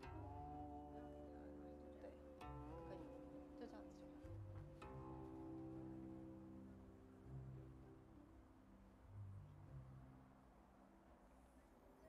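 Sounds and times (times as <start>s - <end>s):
plucked string chords: 0.0s - 7.8s.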